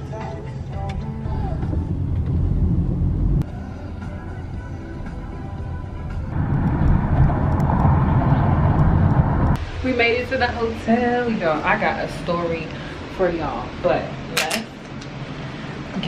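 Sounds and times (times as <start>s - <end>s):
background music: 0.0s - 8.0s
car road and engine rumble: 0.0s - 16.0s.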